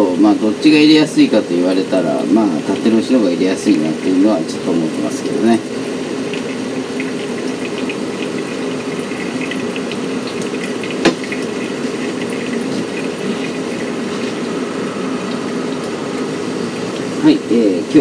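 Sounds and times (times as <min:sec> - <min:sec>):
kettle knocking down: 0:11.0 - 0:11.5.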